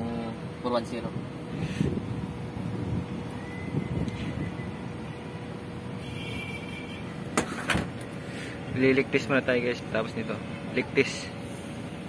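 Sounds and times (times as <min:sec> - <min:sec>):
faint constant hum: 0:00.0 - 0:12.0.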